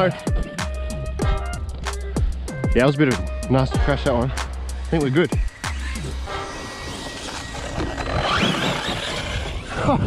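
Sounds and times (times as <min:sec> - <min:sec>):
electric motor whining: 0:04.7 - 0:10.0.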